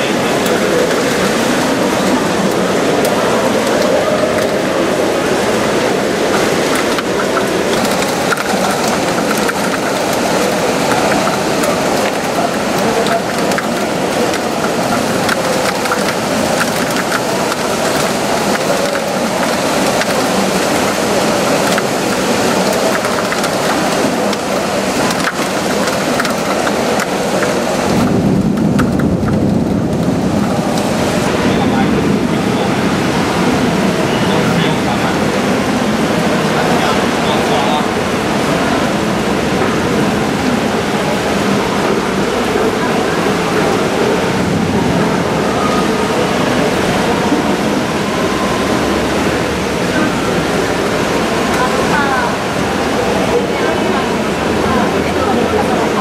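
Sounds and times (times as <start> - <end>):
heavy rain downpour: 0.0 - 56.0
raindrops ticking: 0.0 - 56.0.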